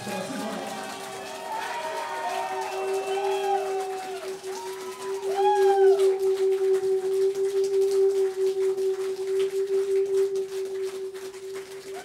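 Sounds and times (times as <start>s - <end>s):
crowd whooping: 0.0s - 12.0s
amplified pulsing drone: 2.8s - 12.0s.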